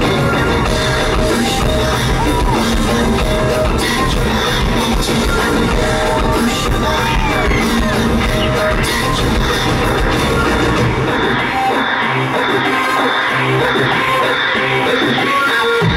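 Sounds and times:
live rock band music: 0.0s - 15.9s.

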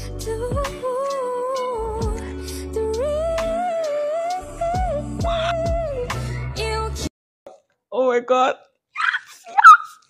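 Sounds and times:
woman singing pop ballad: 0.0s - 7.1s.

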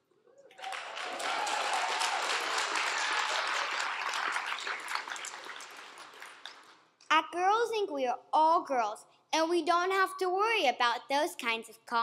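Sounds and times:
audience applauding: 0.5s - 6.8s.

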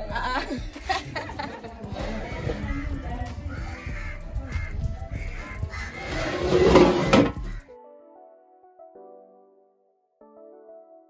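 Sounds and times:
background music: 0.0s - 11.0s
bird calling: 0.8s - 7.7s.

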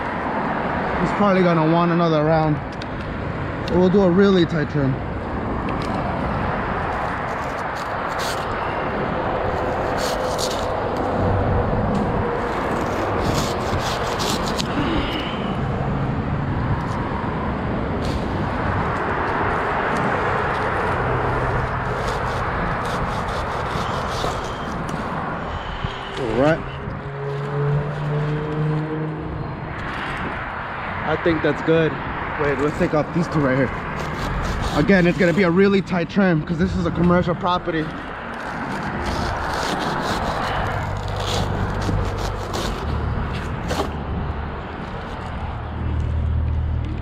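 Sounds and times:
steady rushing noise: 0.0s - 47.0s
hand saw cutting palm fronds: 7.0s - 8.7s, 9.5s - 11.1s, 12.4s - 15.0s, 20.1s - 25.2s, 32.4s - 36.0s, 36.8s - 44.0s.

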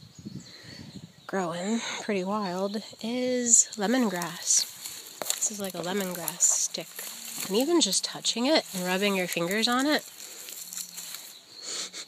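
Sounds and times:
leaves rustling under fingers: 3.3s - 11.5s.

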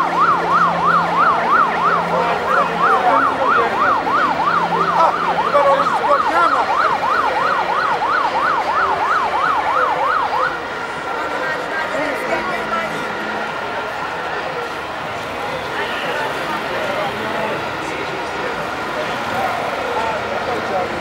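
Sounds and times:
siren yelping: 0.0s - 21.0s.

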